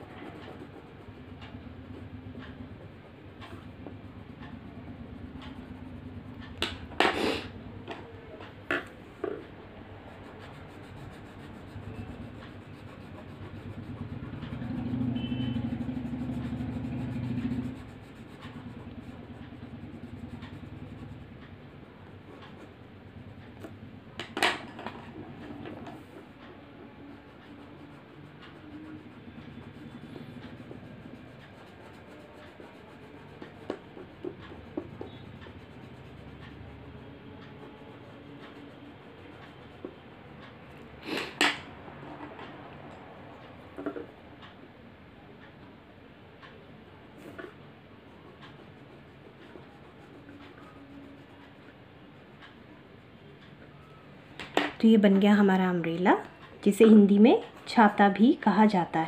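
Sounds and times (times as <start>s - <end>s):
crayon scribbling on paper: 0.0s - 5.9s, 10.0s - 21.4s, 27.0s - 39.8s, 48.1s - 51.7s.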